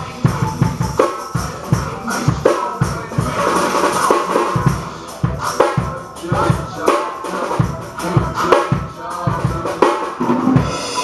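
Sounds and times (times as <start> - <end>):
ringing cymbals: 0.0 - 11.0.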